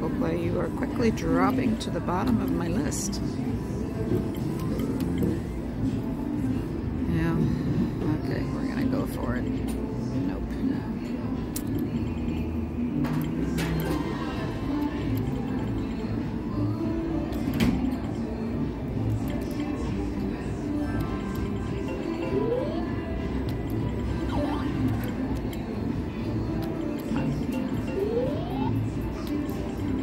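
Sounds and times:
slot machine music: 0:20.7 - 0:30.0
poker machine clicks and tones: 0:20.8 - 0:30.0.

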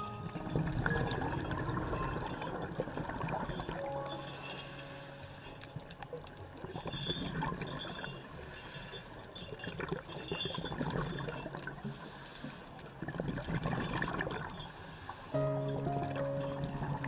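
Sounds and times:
water splashing and gurgling: 0:00.0 - 0:17.0.

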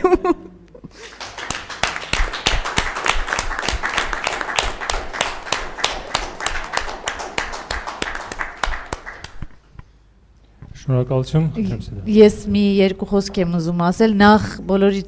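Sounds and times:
people clapping: 0:00.9 - 0:09.6.

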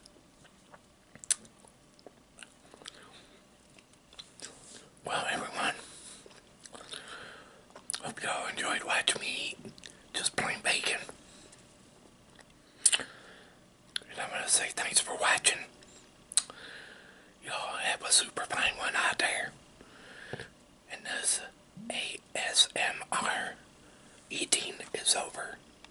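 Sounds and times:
man whispering: 0:05.0 - 0:05.9, 0:08.0 - 0:11.2, 0:14.0 - 0:15.7, 0:17.4 - 0:19.6, 0:20.9 - 0:23.6, 0:24.3 - 0:25.6.

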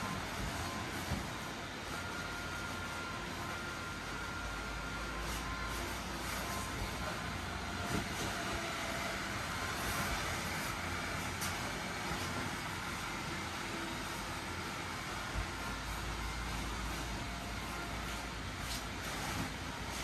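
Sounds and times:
blower fan whirring: 0:00.0 - 0:20.0.

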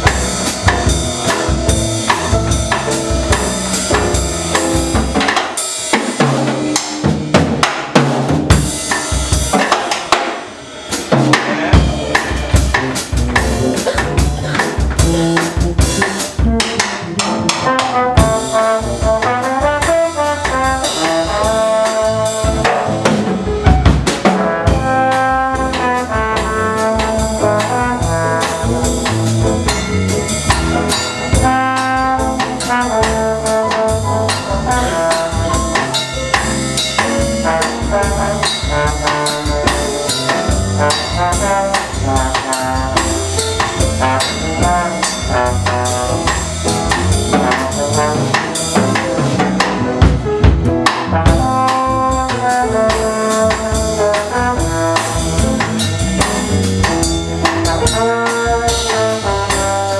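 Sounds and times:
trombone melody: 0:00.0 - 0:05.4, 0:11.4 - 0:59.9
electric bass: 0:00.0 - 0:09.6, 0:10.7 - 0:59.9
drum kit: 0:00.0 - 0:59.9
piano: 0:00.0 - 0:59.9.

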